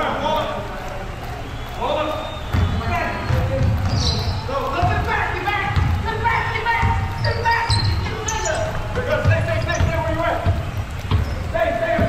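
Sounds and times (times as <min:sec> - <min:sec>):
players' voices: 0:00.0 - 0:12.0
basketball dribbling on hardwood: 0:02.5 - 0:12.0
short high squeaks: 0:06.3 - 0:10.3.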